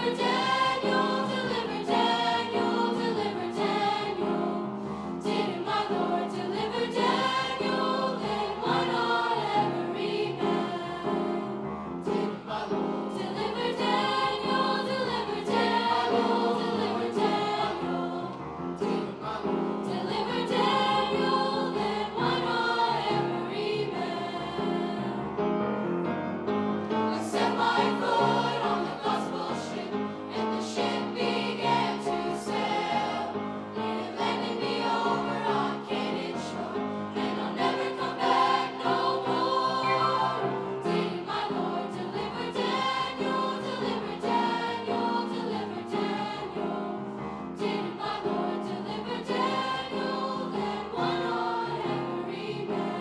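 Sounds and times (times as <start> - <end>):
children's choir singing: 0.0 - 25.4, 26.9 - 53.0.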